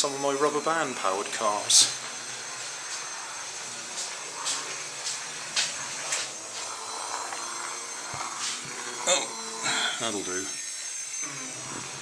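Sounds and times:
small motors buzzy whine: 0.0 - 12.0.

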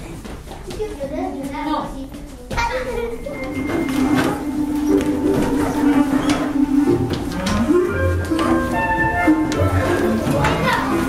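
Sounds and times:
children chattering and calling out: 0.6 - 11.0.

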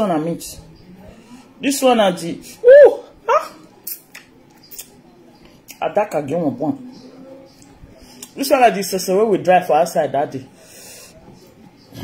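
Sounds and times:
chewing smacks: 3.8 - 5.0.

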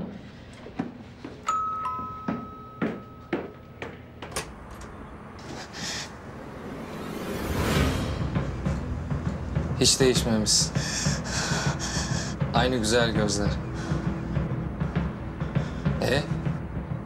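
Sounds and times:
footsteps on wooden stairs: 0.0 - 1.4, 2.0 - 4.9
doorbell chime: 1.4 - 4.0
door opening: 3.8 - 5.6
rush of sound: 4.5 - 11.2.

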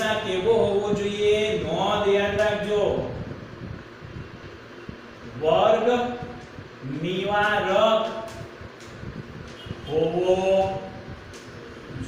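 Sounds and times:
low room noise: 0.0 - 12.0.

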